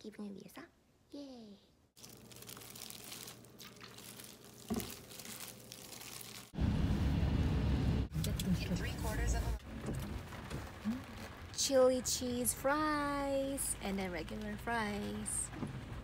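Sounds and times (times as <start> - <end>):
gloves and noodles rustling: 2.0 - 6.6
loud low rumble: 6.6 - 10.1.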